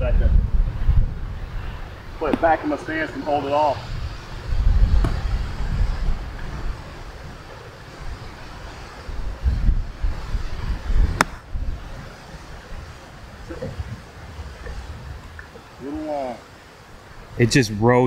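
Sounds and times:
wind buffeting microphone: 0.0 - 18.0
golf club striking ball: 11.1 - 11.5.

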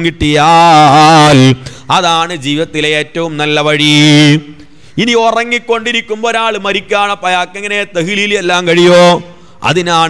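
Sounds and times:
man chanting into a microphone: 0.0 - 10.0.

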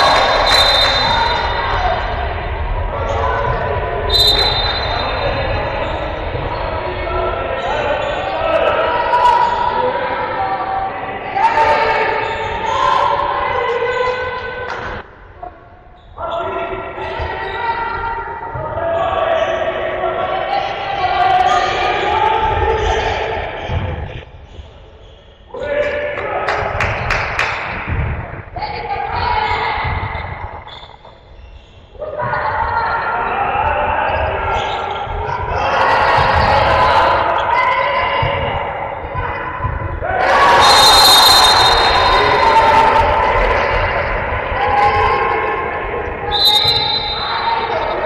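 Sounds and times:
players' voices: 0.0 - 48.0.

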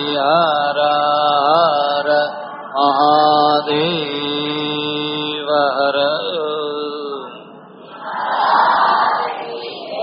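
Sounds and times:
man chanting in long held notes: 0.0 - 7.5.

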